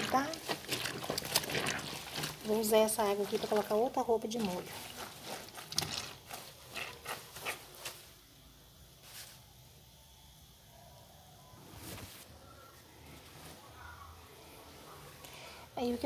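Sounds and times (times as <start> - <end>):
water splashing in a plastic basin: 0.0 - 7.2.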